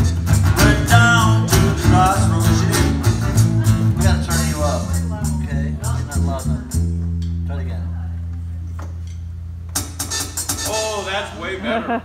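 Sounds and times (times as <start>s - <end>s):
drumming: 9.7s - 11.4s.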